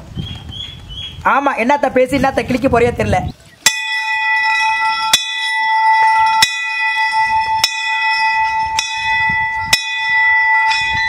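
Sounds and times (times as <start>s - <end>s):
temple bell ringing: 3.6s - 11.0s.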